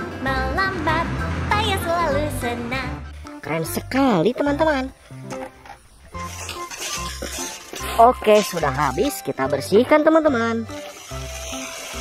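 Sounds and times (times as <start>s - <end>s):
background music with bass note: 0.0s - 12.0s
wet gravel rattling and scraping: 5.3s - 9.3s, 10.7s - 12.0s.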